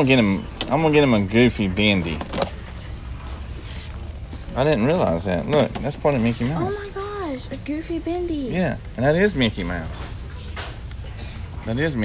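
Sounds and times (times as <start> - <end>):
plastic packs rattling on hooks: 0.0 - 7.6.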